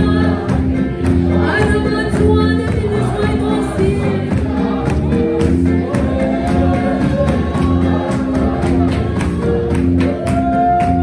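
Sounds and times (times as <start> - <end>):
congregation singing gospel song: 0.0 - 11.0.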